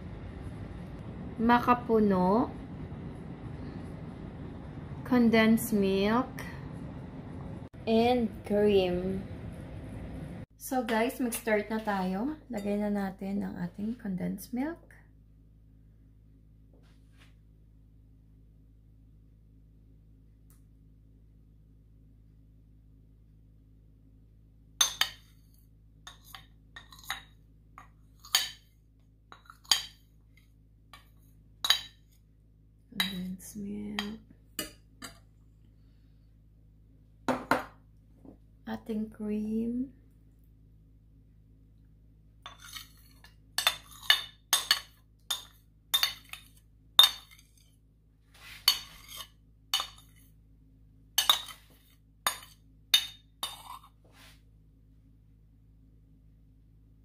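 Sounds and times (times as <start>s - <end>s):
low steady hum: 0.0s - 57.0s
metal spoon clinking on ceramic bowl: 43.6s - 47.6s, 48.7s - 50.2s, 51.2s - 53.9s.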